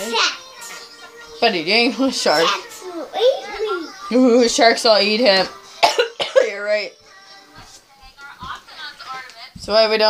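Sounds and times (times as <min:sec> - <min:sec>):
woman coughing: 0:05.8 - 0:06.8.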